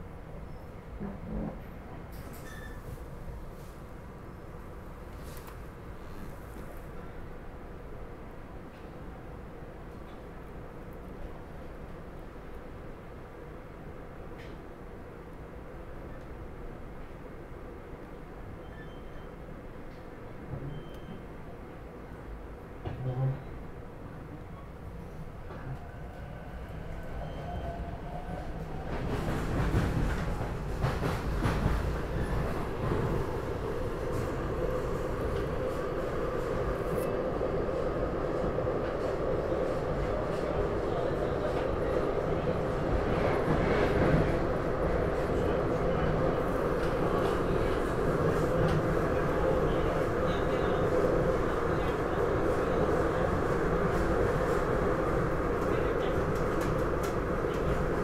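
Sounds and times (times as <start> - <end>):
train wheels rumbling on track: 25.1 - 58.0.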